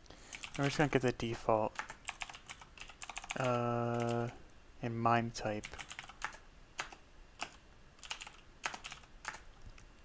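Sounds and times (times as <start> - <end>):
computer keyboard typing: 0.3 - 1.1, 1.8 - 4.4, 5.6 - 9.6.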